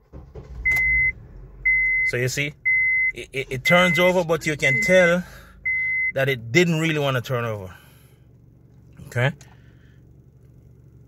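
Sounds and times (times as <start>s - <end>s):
car engine cranking sluggishly: 0.0s - 11.0s
dashboard chime beeps: 1.7s - 6.2s.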